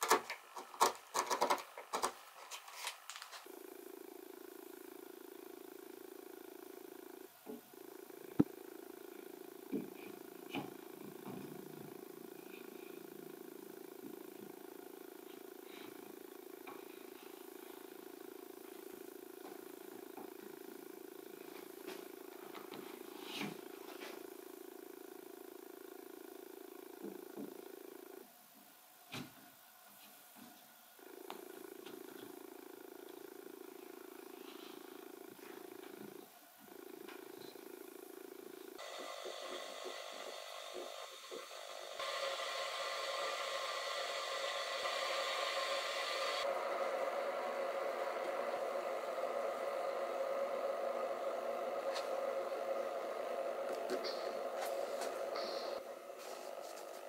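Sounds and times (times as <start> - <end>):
steady low hum: 2.2 - 28.4, 30.8 - 57.0.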